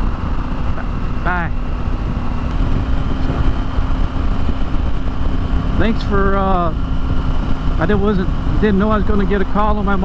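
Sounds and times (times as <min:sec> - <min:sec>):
motorcycle engine hum: 0:00.0 - 0:10.0
wind on microphone: 0:00.0 - 0:10.0.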